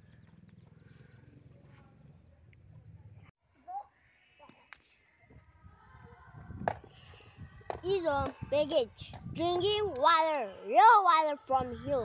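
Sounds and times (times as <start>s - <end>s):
wind rumble on microphone: 5.2s - 10.0s, 11.5s - 12.0s.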